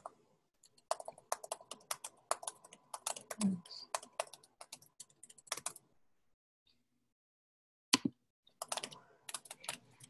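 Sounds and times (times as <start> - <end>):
computer keyboard typing: 0.0 - 5.9, 8.5 - 10.0.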